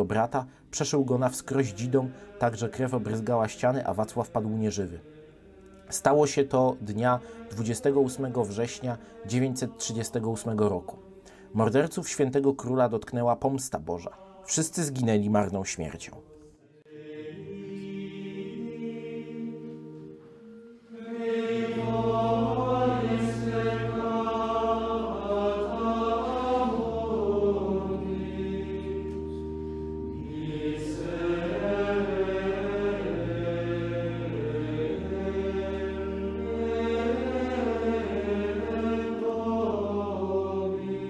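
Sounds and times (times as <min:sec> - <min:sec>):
choral chant: 0:00.0 - 0:12.2, 0:14.0 - 0:15.2, 0:15.8 - 0:41.0
singers breathing: 0:02.1 - 0:02.4, 0:07.2 - 0:07.5, 0:09.0 - 0:09.3, 0:11.1 - 0:11.6.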